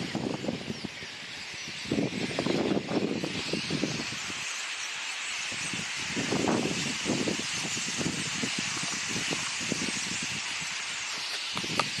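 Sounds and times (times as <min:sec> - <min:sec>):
starlings chattering: 0:00.0 - 0:12.0.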